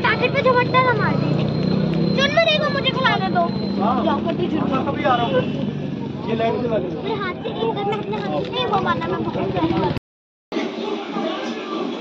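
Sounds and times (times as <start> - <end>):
high-pitched voices chattering: 0.0 - 10.0, 10.6 - 12.0
road traffic hum: 0.0 - 10.0.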